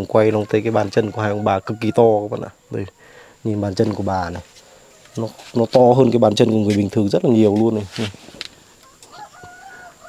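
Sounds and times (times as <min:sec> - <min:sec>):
rooster crowing faintly: 0:00.3 - 0:02.7, 0:08.8 - 0:10.0.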